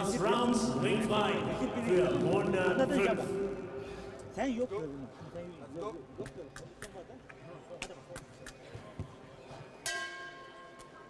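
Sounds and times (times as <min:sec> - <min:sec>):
low arena background: 0:00.0 - 0:11.0.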